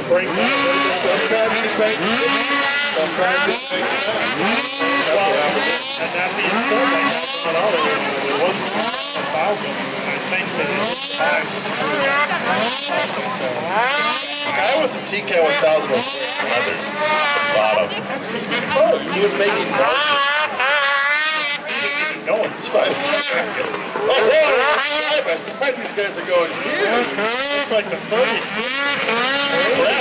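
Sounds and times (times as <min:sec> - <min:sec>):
snowmobile engines revving: 0:00.0 - 0:30.0.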